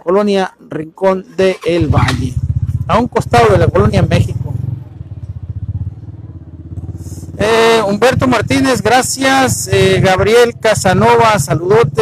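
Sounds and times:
motorcycle engine idling: 0:01.6 - 0:12.0.

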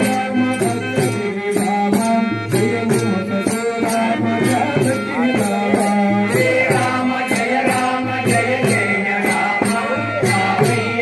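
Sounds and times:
voices singing devotional chant: 0:00.0 - 0:11.0.

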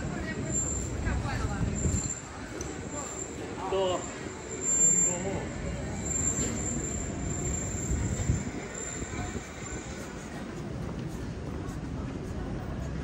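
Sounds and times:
passers-by talking: 0:00.0 - 0:13.0
urban background noise: 0:00.0 - 0:13.0.

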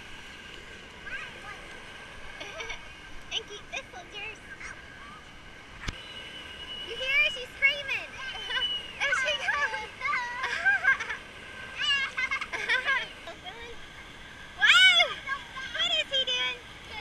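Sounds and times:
steady background wash: 0:00.0 - 0:17.0
distant children's voices: 0:00.4 - 0:17.0.

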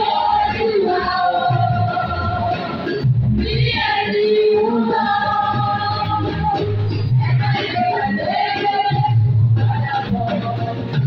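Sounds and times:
women's choir singing: 0:00.0 - 0:10.7.

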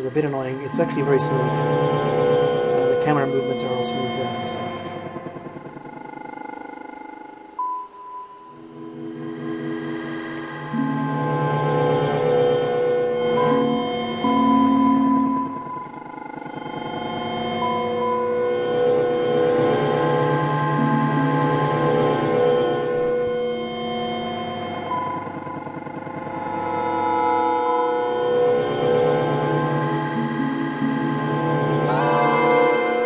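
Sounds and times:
sustained synthetic tones: 0:00.0 - 0:07.6, 0:08.5 - 0:33.0.

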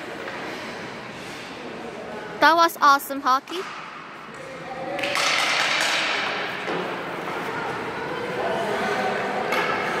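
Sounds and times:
indistinct echoing voices: 0:00.0 - 0:10.0.

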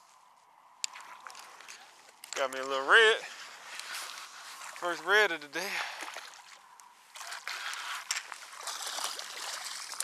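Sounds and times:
fish splashing in shallow water: 0:03.2 - 0:10.0.

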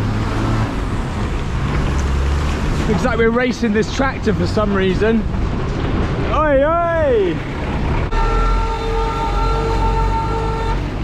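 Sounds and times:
diesel engines droning: 0:00.0 - 0:11.0.

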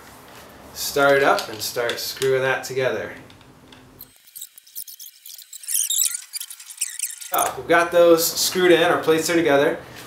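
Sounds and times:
screwdriver squeaks and ticks: 0:04.0 - 0:07.6.

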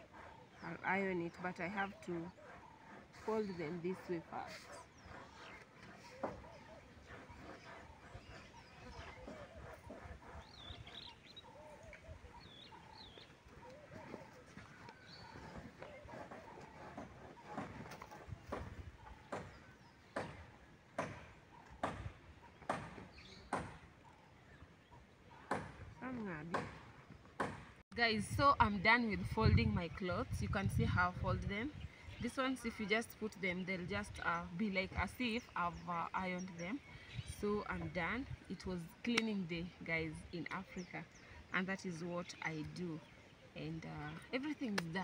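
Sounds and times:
birds chirping: 0:00.0 - 0:45.0.

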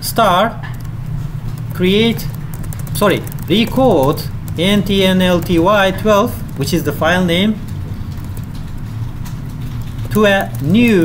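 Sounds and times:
low room hum and hiss: 0:00.0 - 0:11.0
keyboard key clicks: 0:00.7 - 0:07.0.

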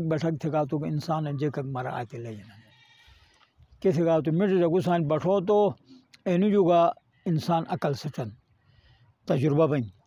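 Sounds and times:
man speaking: 0:00.0 - 0:02.6, 0:03.8 - 0:08.4, 0:09.2 - 0:10.0
faint sheep bleat: 0:01.3 - 0:03.4.

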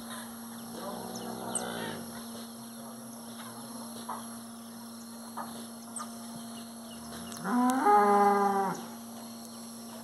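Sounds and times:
cow mooing: 0:00.8 - 0:02.1, 0:07.4 - 0:08.9.

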